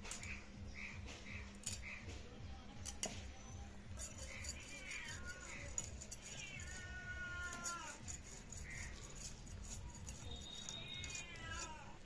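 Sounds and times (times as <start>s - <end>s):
cat meowing: 4.4s - 8.0s, 10.8s - 12.0s.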